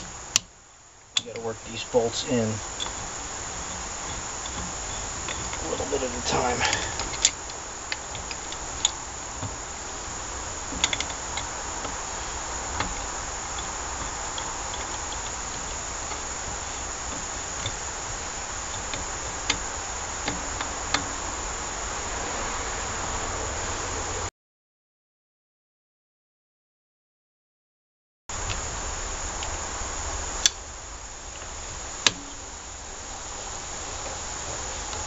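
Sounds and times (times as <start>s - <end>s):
steady high hiss: 0.0s - 24.3s, 28.3s - 35.0s.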